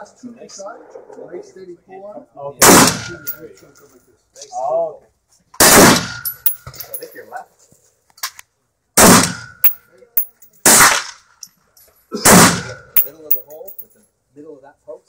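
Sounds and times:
gunshots with ring-out: 2.6s - 3.3s, 5.6s - 6.2s, 9.0s - 9.5s, 12.2s - 12.8s.

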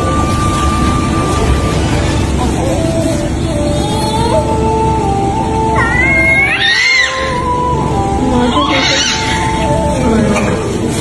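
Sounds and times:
background music: 0.0s - 11.0s
newborn baby crying: 5.8s - 7.6s, 8.3s - 9.7s.

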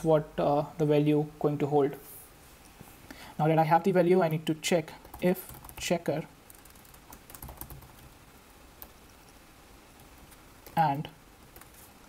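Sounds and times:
typing on computer keyboard: 5.0s - 5.9s, 6.5s - 8.1s.

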